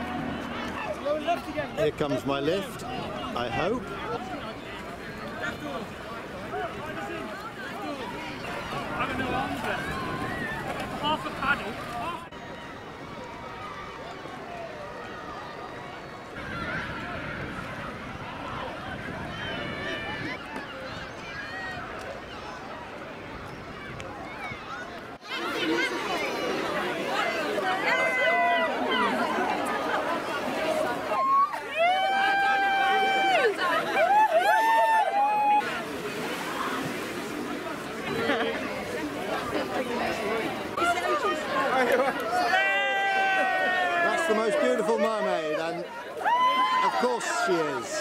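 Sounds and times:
crowd hubbub: 0.0s - 48.0s.

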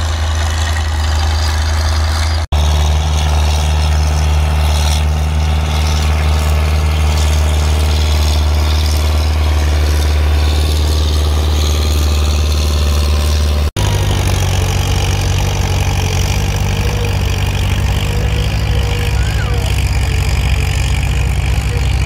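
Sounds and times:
tractor engine higher drone: 0.0s - 22.0s
tractor engine running under load: 0.0s - 22.0s.

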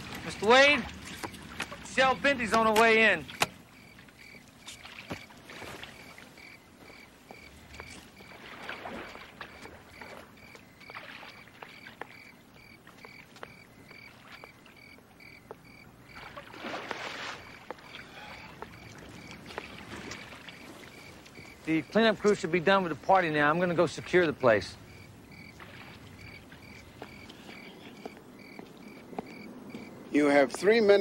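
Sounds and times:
water splashing in a pool: 0.0s - 29.0s.

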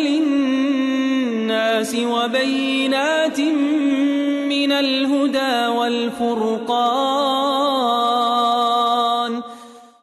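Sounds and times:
voice reciting a long held note: 0.0s - 9.6s.

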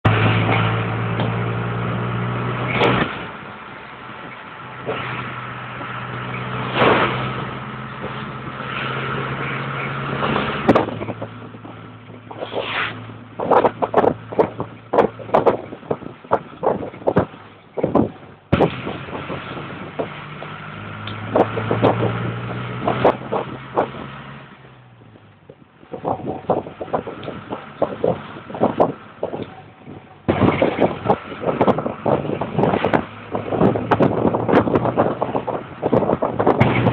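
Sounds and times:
vehicle engine hum: 0.0s - 36.9s
sharp knocks and rattles: 6.2s - 12.6s, 13.4s - 24.1s, 25.4s - 36.9s.

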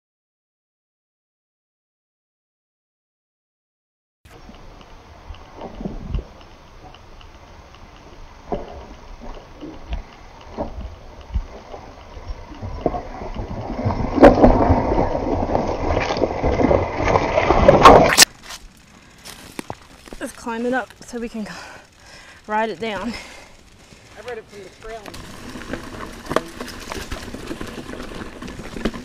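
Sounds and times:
bike tyres clattering on rock: 8.7s - 29.0s.

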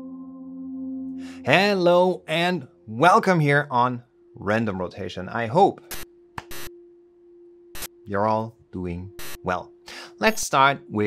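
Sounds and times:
faint steady tone: 0.7s - 11.0s.

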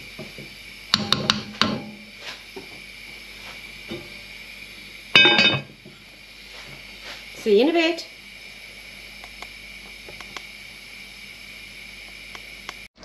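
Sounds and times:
heavy lid clanking on pot: 5.2s - 5.7s.

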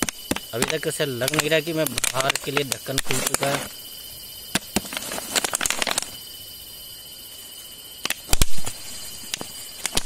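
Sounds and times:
plastic jar crackling: 0.0s - 3.7s, 4.6s - 6.2s
insect chirr: 0.0s - 10.0s.

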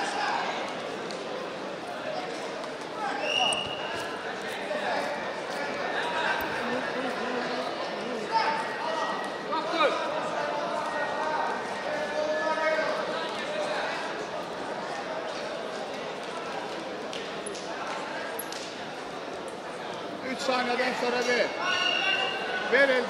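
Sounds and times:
crowd chatter: 0.0s - 23.0s
voices echoing in sports hall: 0.0s - 23.0s.

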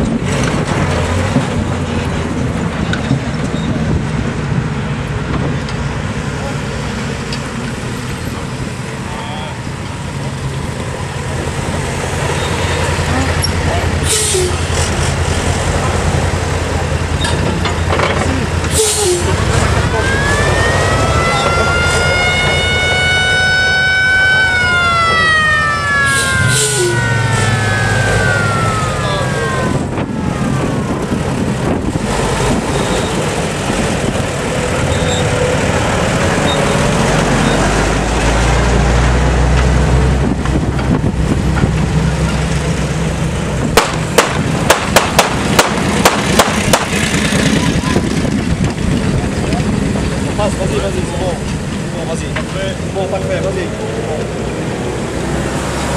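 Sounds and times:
military truck engines running: 0.0s - 55.9s
siren winding up and down: 19.8s - 31.3s
sharp loud cracks: 43.8s - 47.2s.

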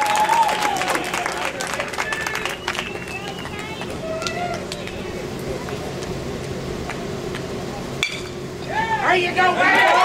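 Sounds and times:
drawn-out shouts: 8.6s - 10.0s
people calling out: 8.6s - 10.0s.

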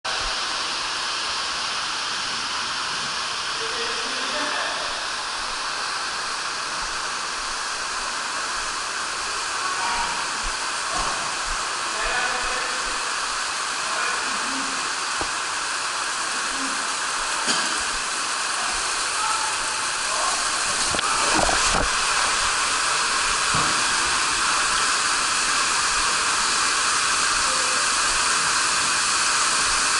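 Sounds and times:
running water rushing: 0.1s - 29.9s.

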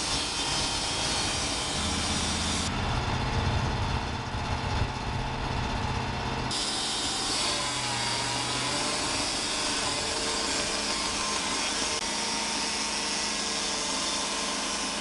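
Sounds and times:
portable sawmill running: 0.0s - 15.0s.

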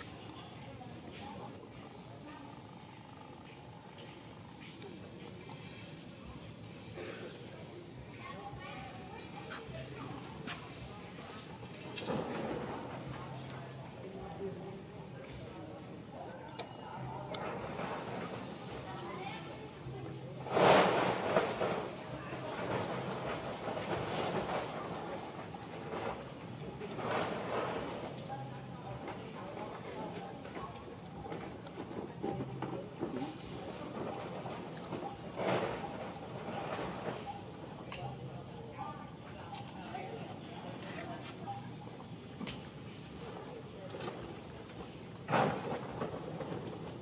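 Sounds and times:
faint background voices: 0.0s - 47.0s
rustle: 17.0s - 47.0s.

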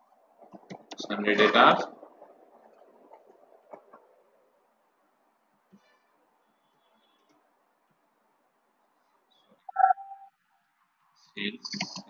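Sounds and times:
short loud steady tone: 9.7s - 10.3s.

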